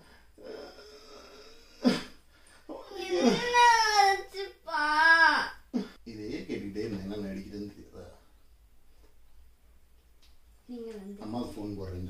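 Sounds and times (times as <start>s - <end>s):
person wailing: 2.7s - 5.5s.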